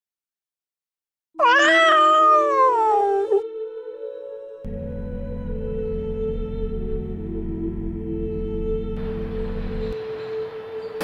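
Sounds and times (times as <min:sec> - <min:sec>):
cat meowing: 0:01.4 - 0:03.4
steady held tone: 0:04.7 - 0:10.0.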